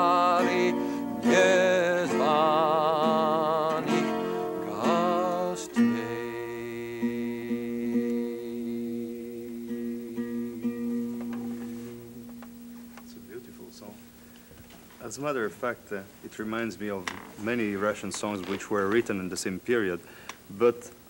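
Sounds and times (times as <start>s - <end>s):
man singing with vibrato: 0.0s - 11.1s
twelve-string acoustic guitar: 0.0s - 14.1s.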